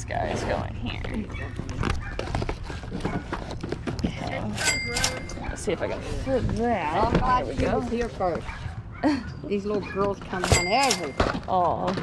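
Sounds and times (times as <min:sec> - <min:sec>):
boxed toys clacking and knocking: 0:01.5 - 0:05.4, 0:10.1 - 0:12.0.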